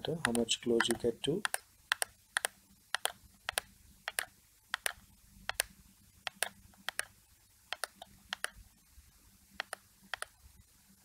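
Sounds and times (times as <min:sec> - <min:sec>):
computer mouse button clicking: 0:00.2 - 0:05.7, 0:07.7 - 0:08.6.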